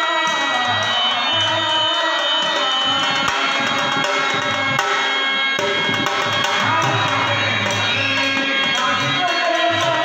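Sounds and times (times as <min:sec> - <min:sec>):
man singing into a microphone: 0:00.0 - 0:05.0, 0:05.6 - 0:10.0.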